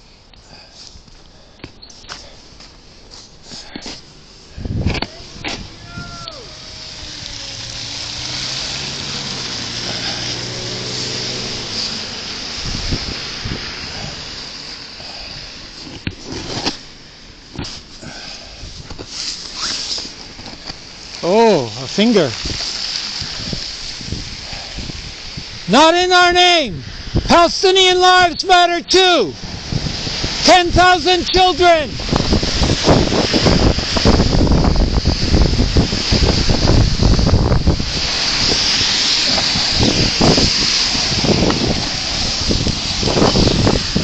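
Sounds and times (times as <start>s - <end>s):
vehicle passing: 5.2s - 15.8s
clothing rubbing against camera: 15.8s - 16.9s, 18.7s - 20.8s.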